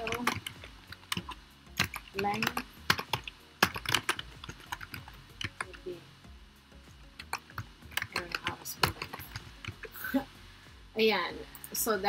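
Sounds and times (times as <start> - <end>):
computer keyboard typing: 0.0 - 5.9, 7.1 - 10.0.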